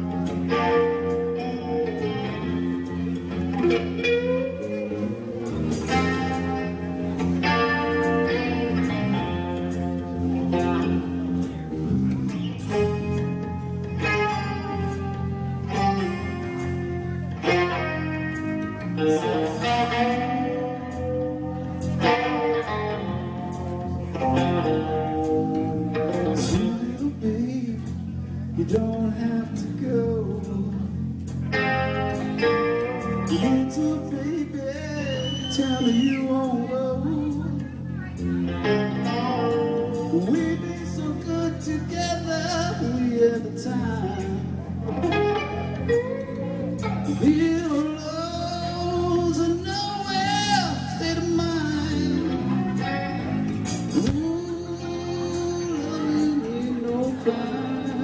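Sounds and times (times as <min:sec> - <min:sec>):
bass guitar: 0:00.0 - 0:58.0
electric guitars: 0:00.0 - 0:58.0
drum kit with cymbal hits: 0:50.1 - 0:58.0.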